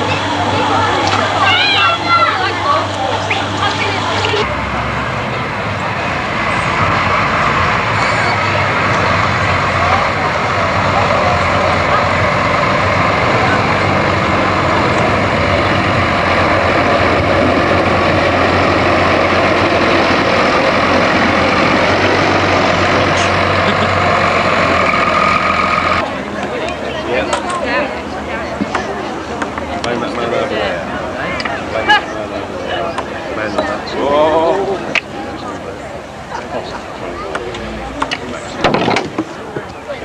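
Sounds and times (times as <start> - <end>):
tractor diesel engine running: 0.0 - 40.0.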